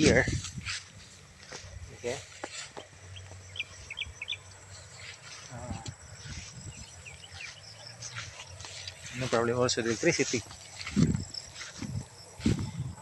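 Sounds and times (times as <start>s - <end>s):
bird chirping: 2.0s - 12.4s.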